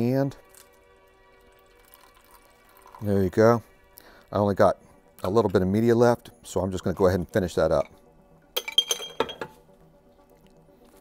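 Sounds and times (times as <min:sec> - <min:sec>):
liquid pouring: 0:00.4 - 0:03.6
glass beaker clinking: 0:08.6 - 0:09.6.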